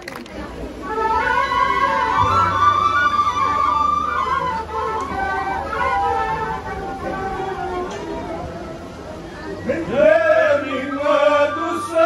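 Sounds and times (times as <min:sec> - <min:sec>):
wooden flutes playing folk tune: 0:00.3 - 0:12.0.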